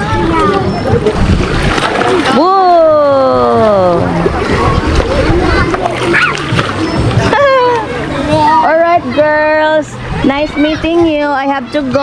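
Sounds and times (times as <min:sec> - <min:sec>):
child's voice: 0:00.0 - 0:00.8, 0:05.2 - 0:06.2
pool water splashing: 0:00.0 - 0:12.0.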